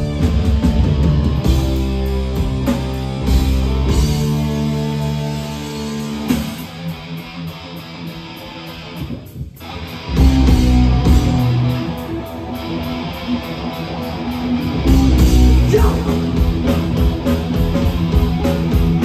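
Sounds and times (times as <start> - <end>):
electric guitar passage: 0.0 - 19.0
heavy metal band playing: 0.0 - 19.0.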